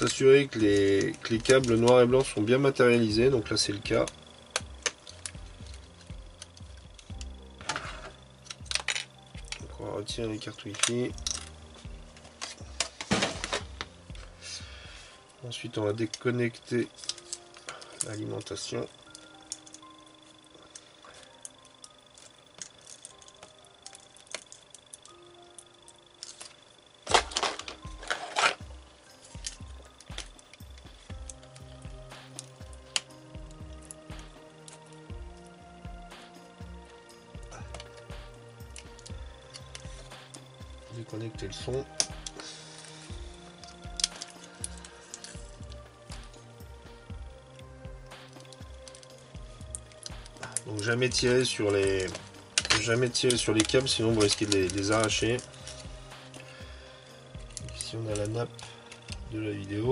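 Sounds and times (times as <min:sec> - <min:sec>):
soft background music: 0:00.0 - 0:59.9.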